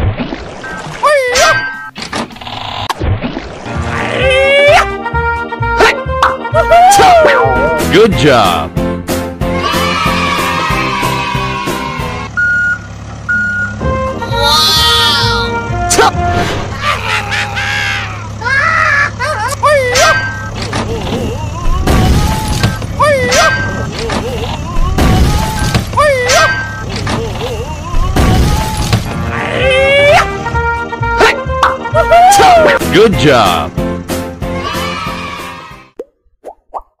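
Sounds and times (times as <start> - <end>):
squeaky cartoon voices: 1.0 - 1.9, 14.3 - 15.6, 16.8 - 30.4
music: 3.7 - 12.3, 13.8 - 16.7, 29.1 - 36.0
low engine hum: 9.5 - 31.2
vehicle reversing beep: 12.3 - 13.9, 20.0 - 20.6, 23.3 - 23.9, 26.4 - 27.0
rising pop sound effects: 36.0 - 37.0.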